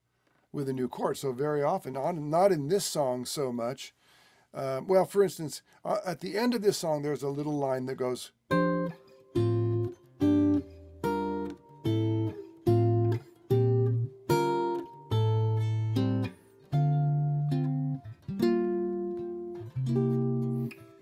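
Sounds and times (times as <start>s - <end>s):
jazz guitar chords plucked: 8.5s - 21.0s.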